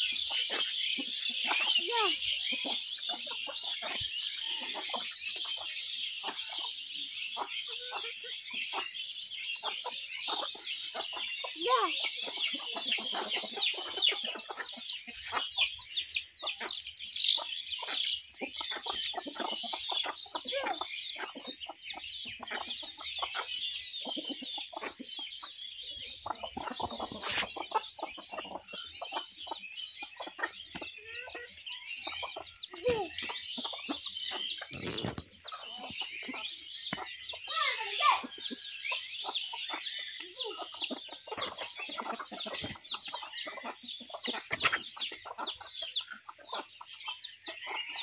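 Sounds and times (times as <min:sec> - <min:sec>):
chicks peeping: 0:00.0 - 0:48.0
hens clucking: 0:00.0 - 0:48.0.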